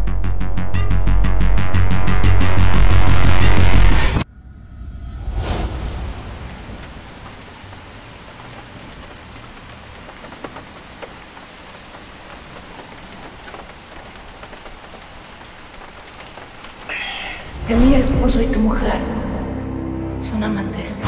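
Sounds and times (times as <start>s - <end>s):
steady rain: 5.6s - 19.1s
single raindrops ticking: 6.7s - 17.5s.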